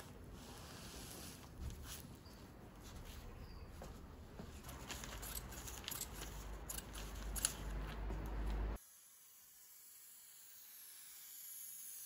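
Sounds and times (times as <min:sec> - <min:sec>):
scissors snipping cloth: 0:04.7 - 0:08.6.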